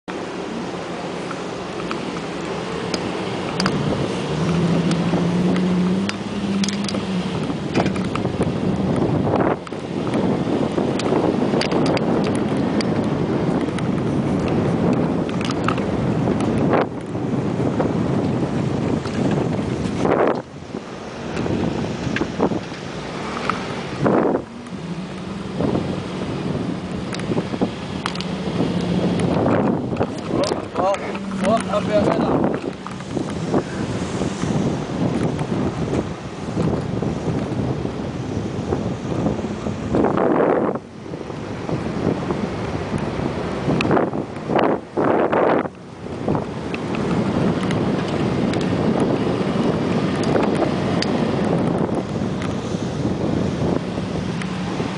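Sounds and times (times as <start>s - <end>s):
tyre and wind noise: 0.0s - 54.9s
vehicle engine hum: 0.0s - 54.9s.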